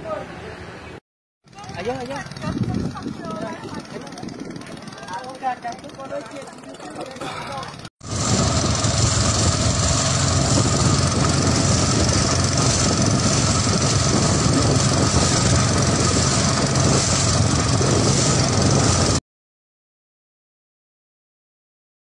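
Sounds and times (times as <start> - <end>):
loud wind noise: 1.6 - 5.4, 8.0 - 19.2.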